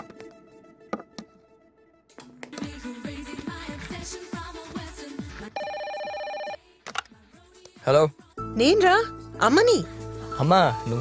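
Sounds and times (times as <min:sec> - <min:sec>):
desk telephone ringing: 0:05.6 - 0:06.6.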